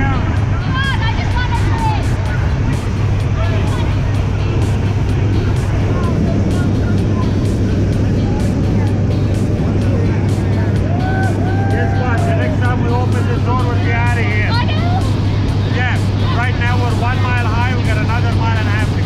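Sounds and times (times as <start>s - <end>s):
faint voices: 0.0s - 19.0s
propeller engine drone: 0.0s - 19.0s
rushing air noise: 0.0s - 19.0s.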